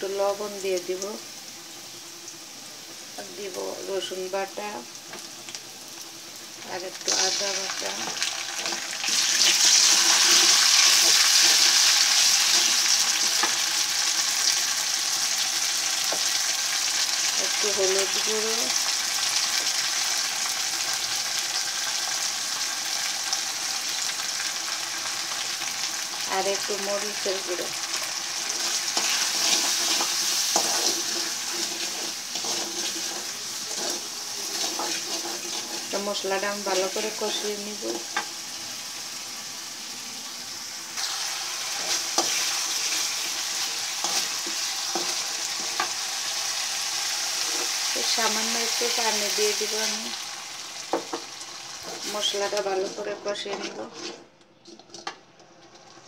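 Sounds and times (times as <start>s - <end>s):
onions sizzling in hot oil: 0.0s - 54.2s
metal spatula scraping a pan: 8.1s - 13.6s, 28.4s - 38.3s, 41.1s - 46.0s, 51.8s - 56.0s.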